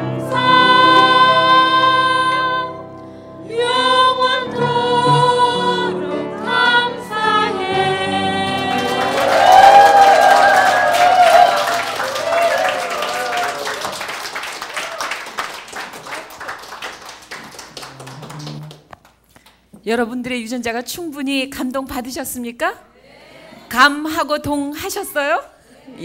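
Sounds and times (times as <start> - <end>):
group singing a cappella: 0.0 - 2.8, 3.5 - 9.6
audience applauding: 8.5 - 19.2.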